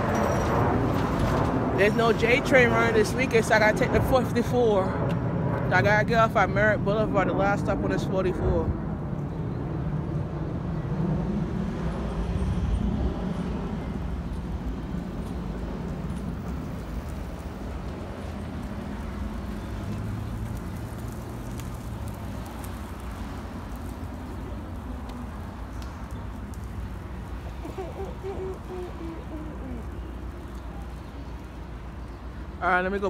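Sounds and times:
traffic rumble: 0:00.0 - 0:33.0.

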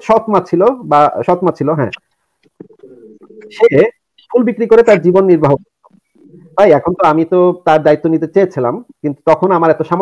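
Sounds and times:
man speaking: 0:00.0 - 0:10.0
low drawn-out cooing call: 0:02.6 - 0:03.8, 0:05.9 - 0:06.8.

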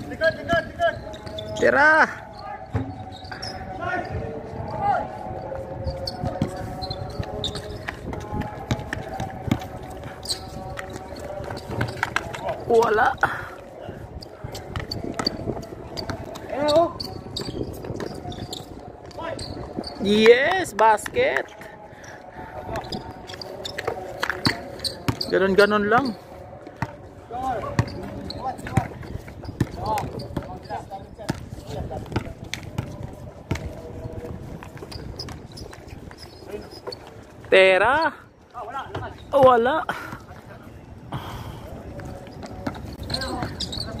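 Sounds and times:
faint voices of players: 0:00.0 - 0:37.5, 0:38.2 - 0:44.0
basketball bouncing on concrete: 0:07.8 - 0:09.8, 0:24.3 - 0:26.1, 0:27.7 - 0:30.6, 0:31.2 - 0:33.8.

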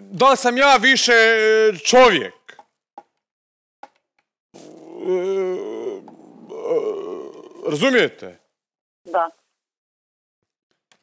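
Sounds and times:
man groaning: 0:04.6 - 0:08.1.

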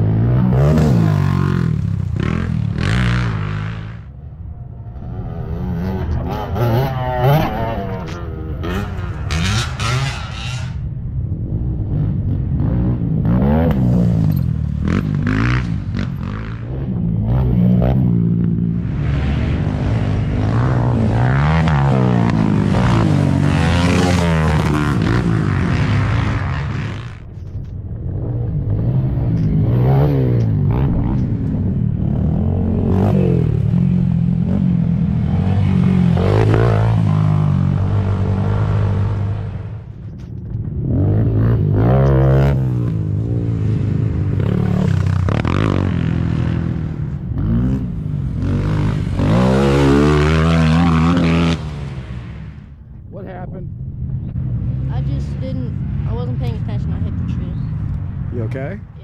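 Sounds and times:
quad bike engines revving: 0:00.0 - 0:59.0.

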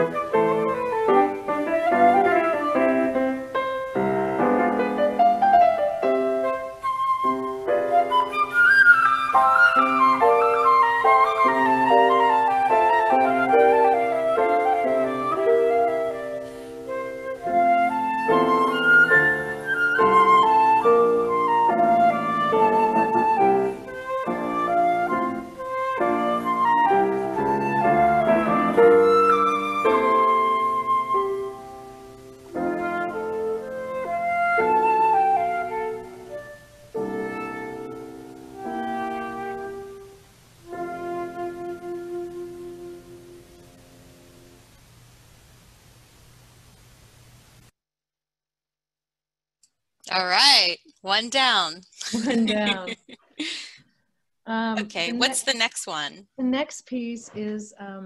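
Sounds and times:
flute melody: 0:00.0 - 0:43.9
piano accompaniment: 0:00.0 - 0:44.8.

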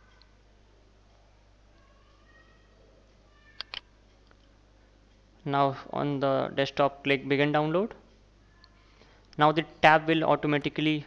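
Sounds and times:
low steady hum: 0:00.0 - 0:11.0
computer mouse clicks: 0:03.6 - 0:04.5.

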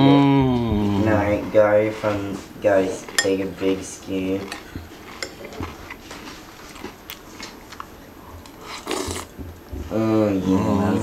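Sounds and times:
person chewing: 0:00.6 - 0:09.6.

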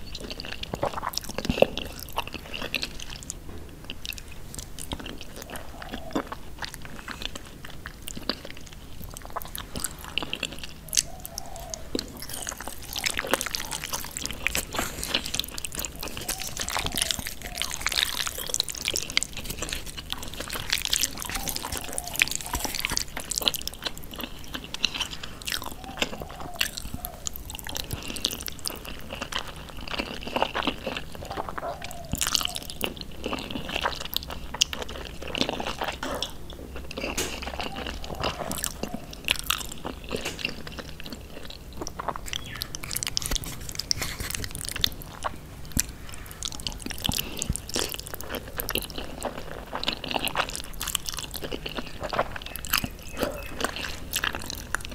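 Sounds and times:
close chewing and mouth sounds: 0:00.0 - 0:54.9.

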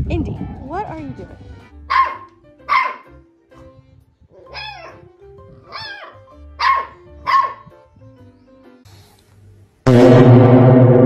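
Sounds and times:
background music: 0:00.0 - 0:09.0
puppy barking: 0:01.9 - 0:03.2, 0:04.3 - 0:05.0, 0:05.6 - 0:07.7.

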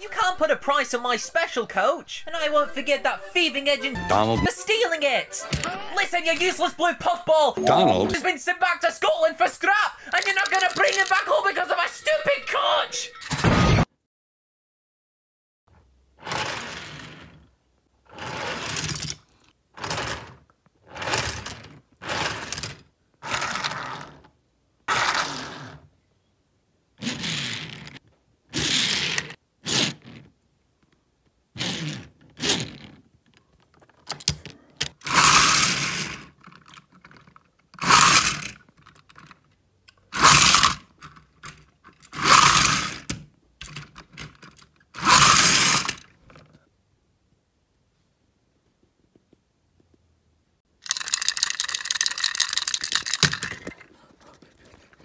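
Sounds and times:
toy train whirring and clattering: 0:10.1 - 0:11.8, 0:16.2 - 0:17.4, 0:18.1 - 0:19.2, 0:19.8 - 0:24.3, 0:24.9 - 0:25.8, 0:27.0 - 0:28.0, 0:28.6 - 0:30.2, 0:35.0 - 0:39.3, 0:40.2 - 0:43.1, 0:43.7 - 0:46.1, 0:50.8 - 0:53.8.

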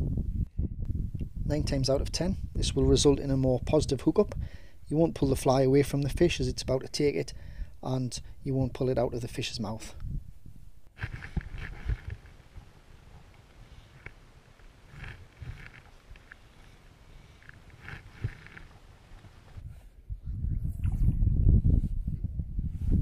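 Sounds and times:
wind rumble on microphone: 0:00.0 - 0:14.1, 0:14.9 - 0:23.0
fly line rustling: 0:10.7 - 0:19.6.

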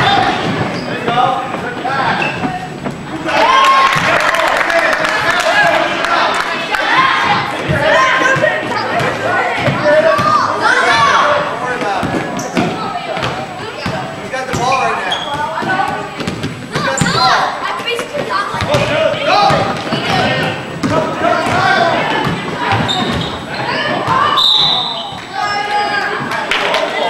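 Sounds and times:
echoing voices talking and shouting: 0:00.0 - 0:27.0
basketball bouncing on wooden floor: 0:18.6 - 0:23.3.

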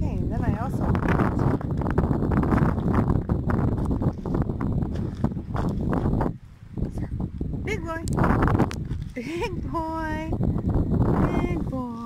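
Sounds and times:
wind buffeting microphone: 0:00.0 - 0:12.0
footsteps on gravel: 0:01.4 - 0:06.3.

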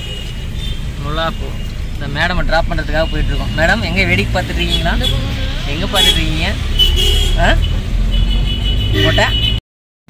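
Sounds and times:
vehicle engine and road rumble: 0:00.0 - 0:09.6
voices: 0:01.0 - 0:07.9.

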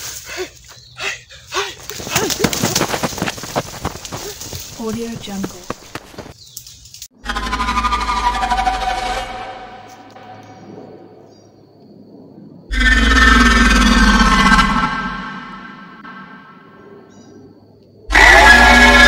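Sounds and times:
horror sound effect stinger: 0:12.7 - 0:16.8.

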